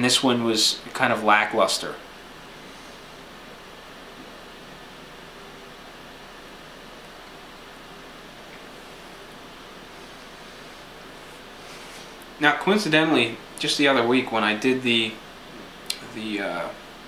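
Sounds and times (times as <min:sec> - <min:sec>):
steady background hiss: 0:00.0 - 0:17.0.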